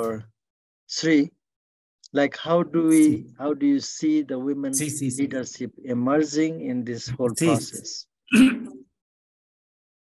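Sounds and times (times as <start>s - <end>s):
man clearing throat: 8.3s - 8.8s.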